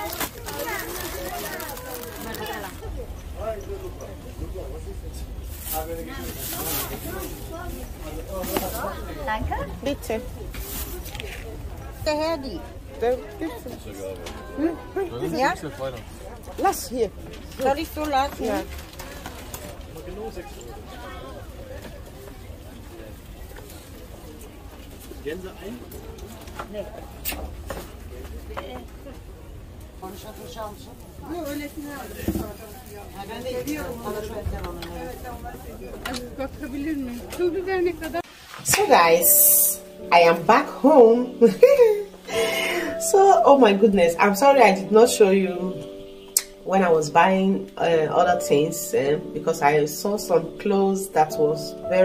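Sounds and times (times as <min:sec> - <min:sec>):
people talking: 0:00.0 - 0:52.0
people talking indistinctly: 0:30.2 - 0:52.0.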